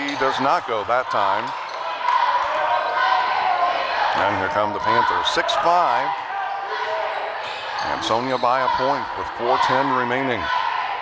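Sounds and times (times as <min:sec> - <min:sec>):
crowd din of voices: 0:00.0 - 0:11.0.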